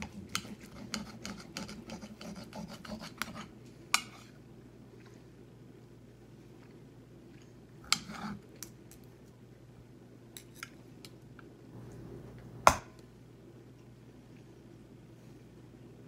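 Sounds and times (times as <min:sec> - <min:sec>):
knife sawing steak on plate: 0:00.4 - 0:03.5.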